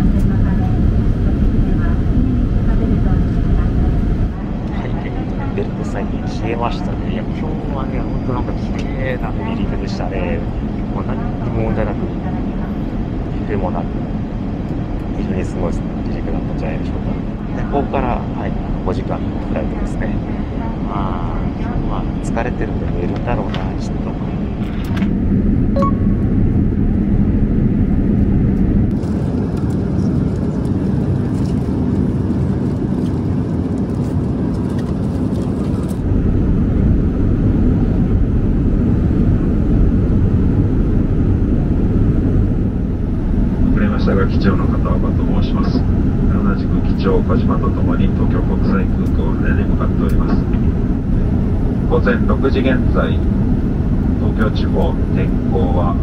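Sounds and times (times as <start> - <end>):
airliner cabin rumble: 0.0 - 56.0.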